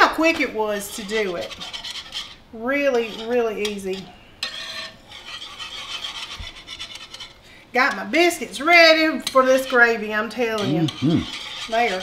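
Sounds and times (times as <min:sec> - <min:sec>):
whisk scraping in skillet: 0:00.0 - 0:12.0.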